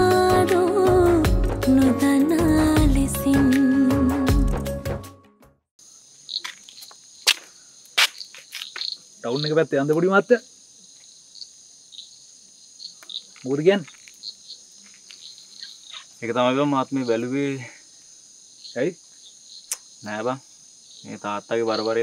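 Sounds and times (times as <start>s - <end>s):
crickets chirring: 5.8s - 22.0s.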